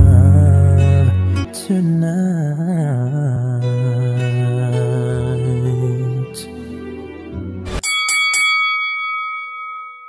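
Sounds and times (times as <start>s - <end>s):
bell-like chime: 7.8s - 10.0s.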